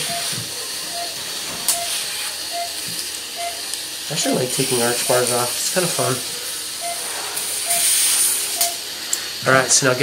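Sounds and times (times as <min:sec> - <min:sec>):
patient monitor beeping: 0:00.0 - 0:03.7, 0:06.7 - 0:08.8.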